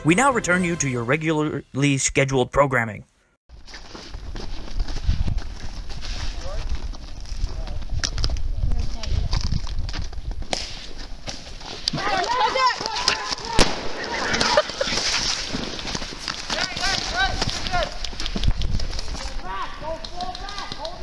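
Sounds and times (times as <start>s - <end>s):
voices calling out: 11.8s - 15.6s
airsoft guns firing: 13.5s - 14.9s.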